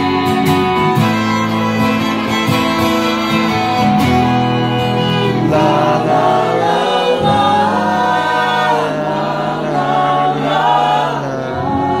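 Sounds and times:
bowed fiddle: 0.0 - 12.0
strummed acoustic guitars: 0.0 - 12.0
voices singing in harmony: 4.1 - 12.0.

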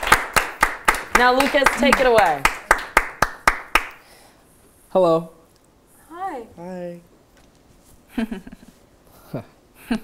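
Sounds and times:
hand claps: 0.0 - 4.0.

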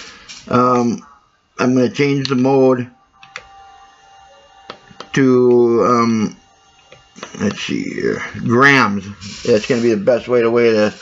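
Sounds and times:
faint steady tone: 0.0 - 11.0.

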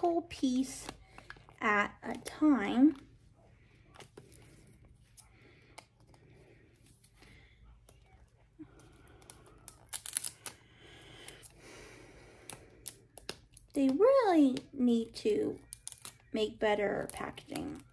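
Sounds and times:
plastic crackles: 0.4 - 3.1, 8.6 - 11.5, 15.5 - 17.9
plastic wrapping crinkling and tearing: 8.9 - 11.5, 15.6 - 17.9.

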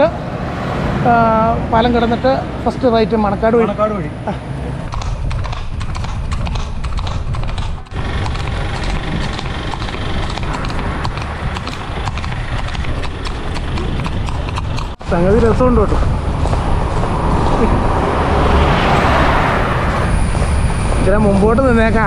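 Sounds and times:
horse hooves clip-clopping on asphalt: 4.9 - 22.0.

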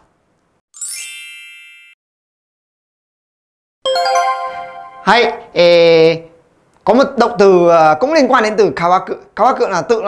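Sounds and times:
bright metallic chime: 0.8 - 2.0, 3.9 - 5.4.

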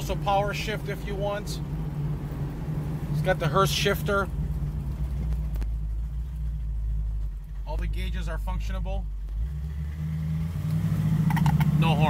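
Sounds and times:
car engine heard from inside: 0.0 - 12.0.

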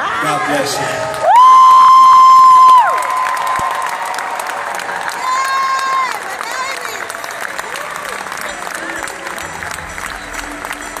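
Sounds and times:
large audience applauding: 0.5 - 11.0
low music: 8.2 - 11.0.

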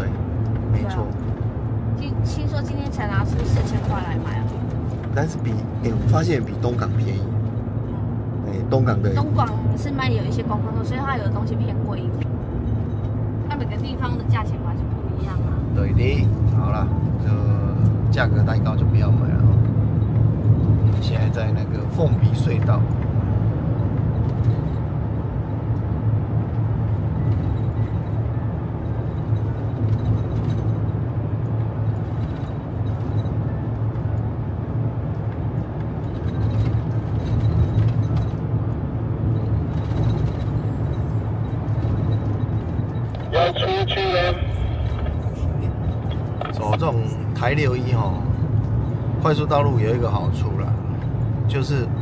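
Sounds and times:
engine drone inside a van: 0.0 - 52.0.

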